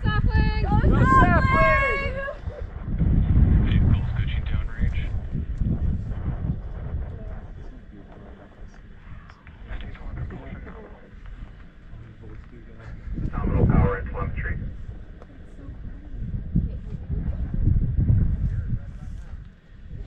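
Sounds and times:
distant rocket rumble: 0.0s - 20.0s
people's voices: 0.0s - 20.0s.

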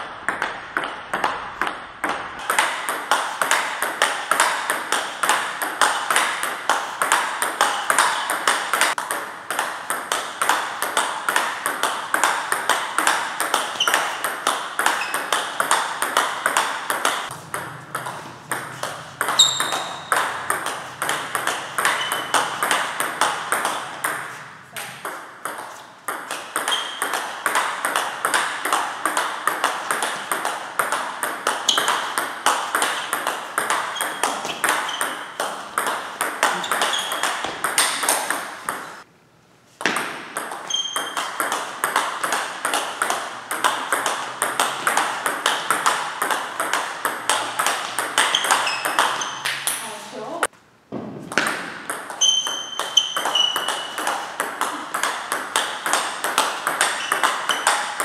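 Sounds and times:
table tennis ball hitting rackets: 0.0s - 39.1s, 39.7s - 50.0s, 50.9s - 58.0s
ball bouncing on table: 0.3s - 39.0s, 39.8s - 49.8s, 50.9s - 58.0s.

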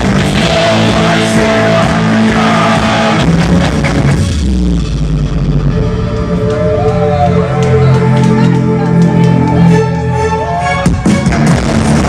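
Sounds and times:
rock band with electric guitar: 0.0s - 12.0s.

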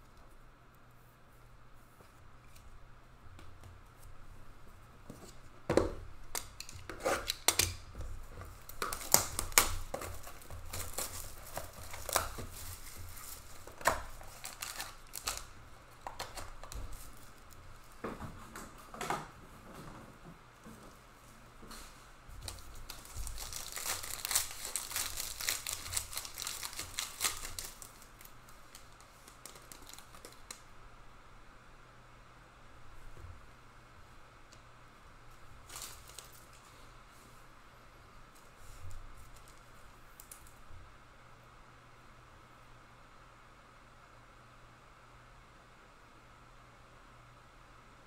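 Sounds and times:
wrapper tearing and crinkling: 8.5s - 17.6s, 22.5s - 30.6s, 35.6s - 36.6s.

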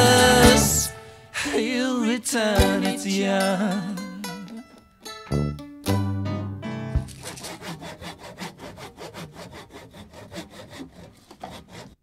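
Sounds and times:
musical chord ringing: 5.2s - 7.0s
handsaw cutting wood: 7.0s - 12.0s.

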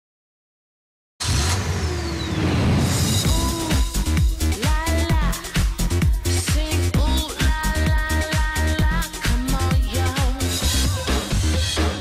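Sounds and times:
car engine rumble: 1.2s - 4.4s.

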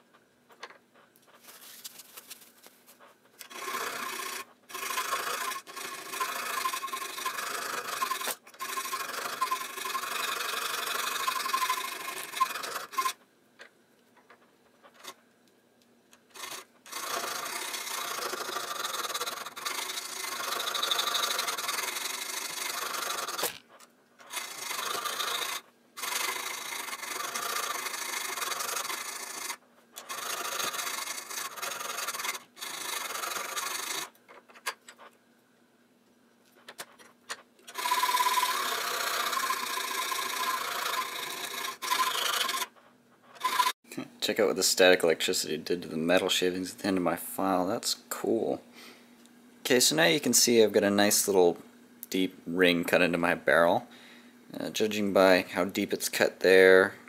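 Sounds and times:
file rasping on metal: 3.5s - 13.2s, 16.4s - 23.6s, 24.3s - 34.1s, 37.7s - 42.8s, 43.4s - 43.8s.

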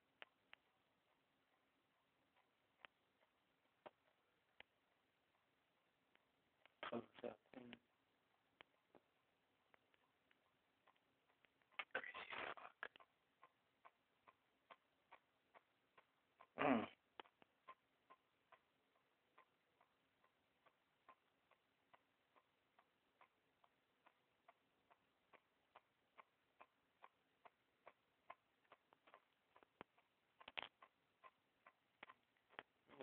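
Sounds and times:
faint regular ticking: 0.0s - 33.0s.

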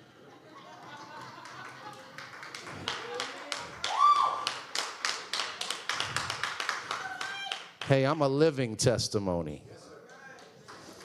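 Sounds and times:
people clapping: 0.8s - 8.2s, 10.1s - 11.0s.

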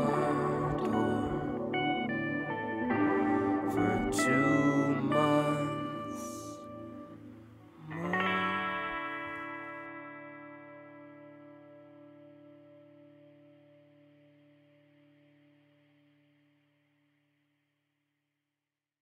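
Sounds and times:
guitar chord ringing: 0.0s - 16.6s.

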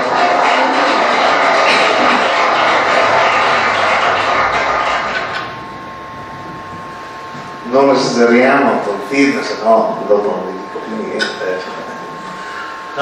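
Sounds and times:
steady hum with thin tone: 0.0s - 13.0s.

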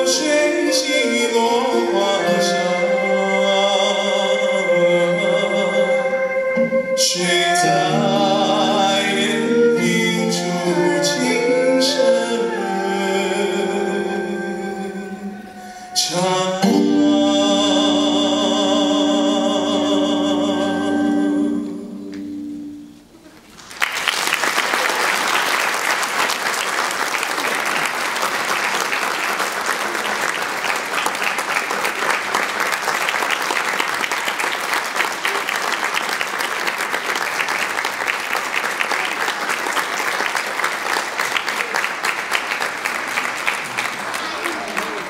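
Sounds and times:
audience applauding: 23.4s - 45.0s.

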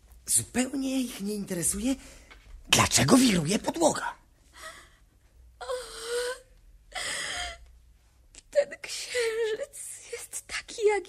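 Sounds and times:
woman gasping breath: 5.9s - 7.7s.

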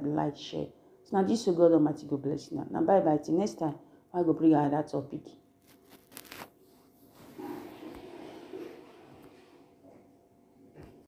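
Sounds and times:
handling rustle: 5.6s - 6.6s.

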